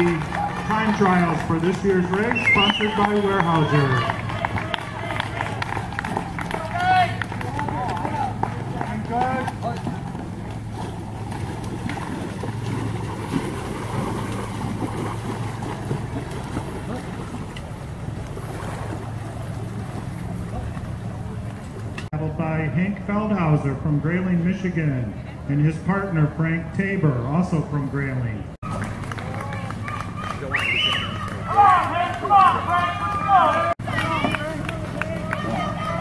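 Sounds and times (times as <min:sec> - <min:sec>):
low hum: 0:00.0 - 0:36.0
voices calling out: 0:00.0 - 0:36.0.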